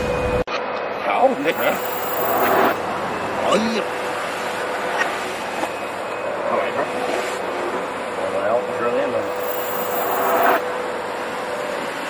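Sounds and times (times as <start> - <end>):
loud noisy burst: 1.4 - 2.8, 9.2 - 10.6
machine hum with hiss: 1.4 - 3.2, 9.2 - 12.0.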